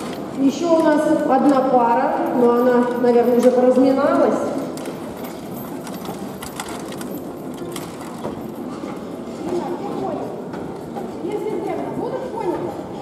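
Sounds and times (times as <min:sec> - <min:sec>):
hooves and wheels on sand: 0:00.0 - 0:13.0.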